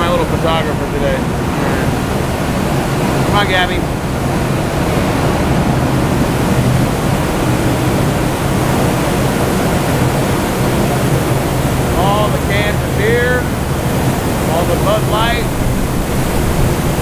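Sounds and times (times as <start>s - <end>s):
person speaking: 0.0s - 2.0s, 11.9s - 13.5s, 14.5s - 15.6s
bottling line machinery din: 0.0s - 17.0s
low machinery hum: 0.0s - 17.0s.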